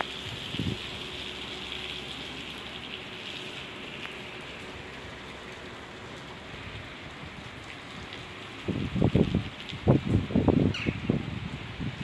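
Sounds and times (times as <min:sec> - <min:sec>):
light rain falling: 0:00.0 - 0:12.0.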